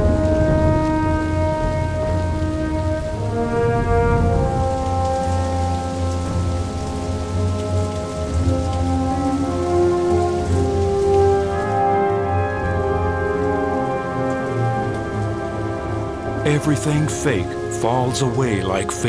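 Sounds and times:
heavy rain: 0.0 - 19.0
orchestral film score chords: 0.0 - 19.0.

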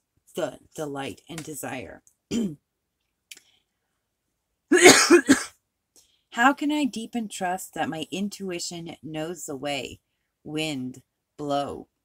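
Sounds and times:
woman clearing her throat: 2.3 - 2.6, 4.7 - 5.5.

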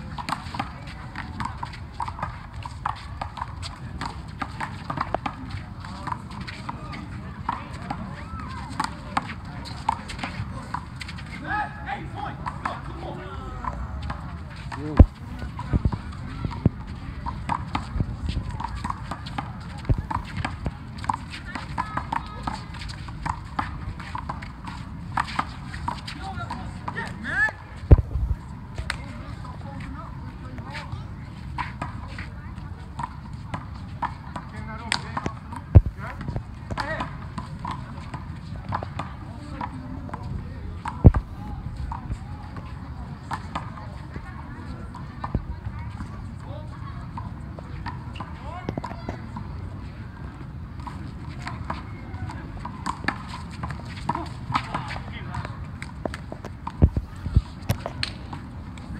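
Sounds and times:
chatter of players: 0.0 - 58.9
handball smacks: 34.9 - 37.1.

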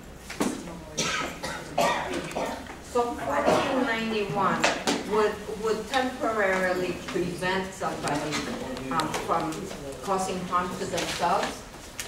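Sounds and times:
person coughing: 1.0 - 2.7, 3.4 - 3.9.

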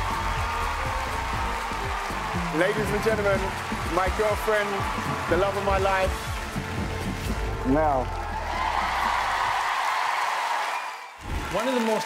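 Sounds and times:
low background music: 0.0 - 10.4
audience applauding and cheering: 0.0 - 12.0.

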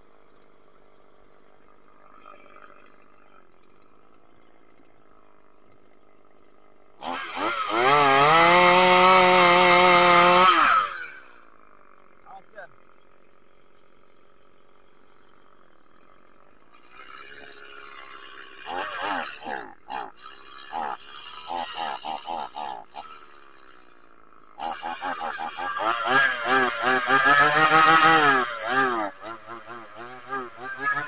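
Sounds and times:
chainsaw revving and cutting: 0.0 - 31.0.

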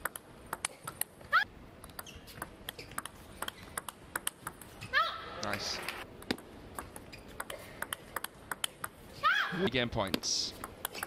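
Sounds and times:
table tennis ball hits: 1.8 - 4.7, 6.2 - 9.0, 10.1 - 11.0.

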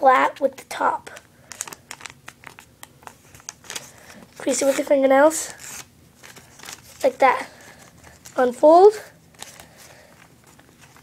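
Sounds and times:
paper crinkling as folded: 1.0 - 11.0.

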